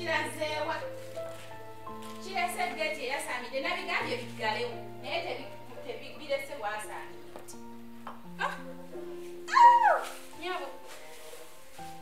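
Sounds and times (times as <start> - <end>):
high-pitched yelp: 9.5 - 10.2.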